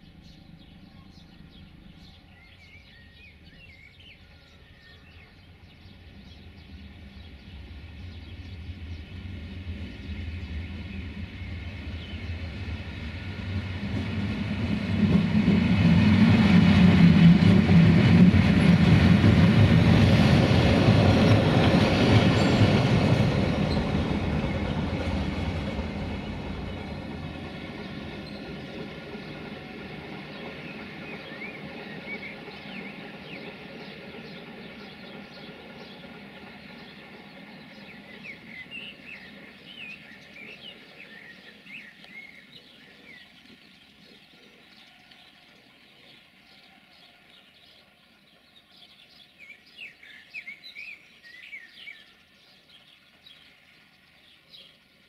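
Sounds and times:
train rumble and wheel noise: 0.0s - 55.0s.

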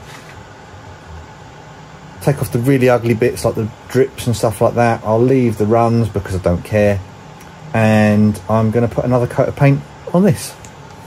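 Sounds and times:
heater hissing: 0.0s - 11.0s.

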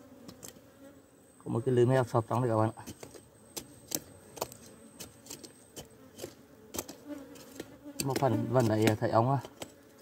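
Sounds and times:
metal blade scraping stony soil: 2.8s - 10.0s.

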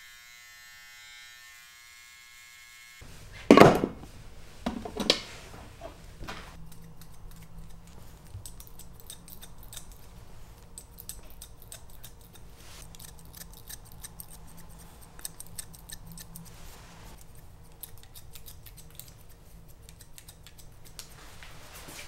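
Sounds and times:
scissors snipping hair: 6.6s - 16.5s, 17.2s - 21.2s.

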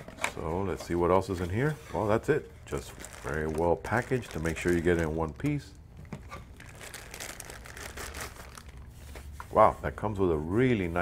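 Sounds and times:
plastic bag crinkling: 2.6s - 9.1s.

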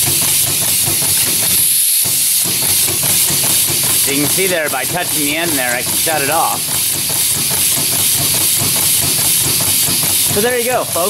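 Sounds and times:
compressed-air engine running: 0.0s - 11.0s.

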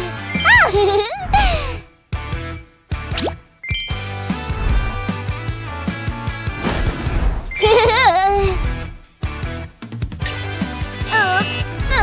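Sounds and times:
upbeat cartoon music: 0.0s - 12.0s.

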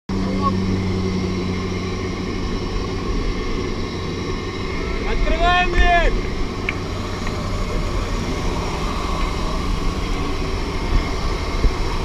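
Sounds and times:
plane engine and propeller drone: 0.1s - 12.0s.

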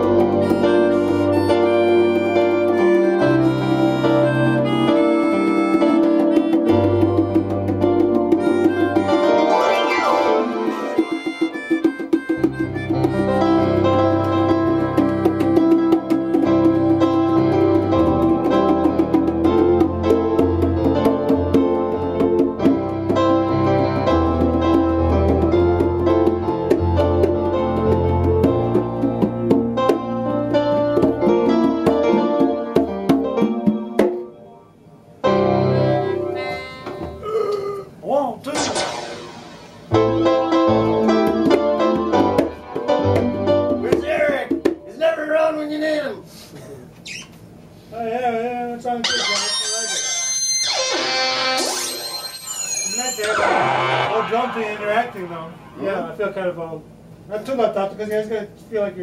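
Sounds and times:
keyboard synthesizer: 0.0s - 15.5s, 38.5s - 41.0s, 49.0s - 56.0s
melodica: 0.0s - 17.4s, 35.6s - 37.3s, 49.0s - 55.2s
conga drum beats: 0.0s - 34.4s, 35.2s - 37.3s, 38.5s - 45.6s, 51.6s - 57.2s.

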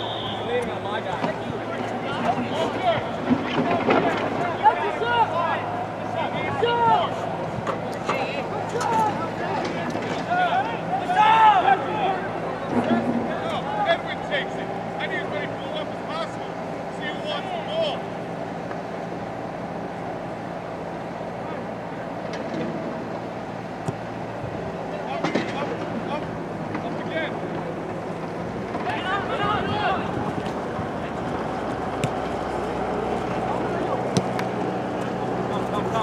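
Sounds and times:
people shouting: 10.2s - 12.4s.

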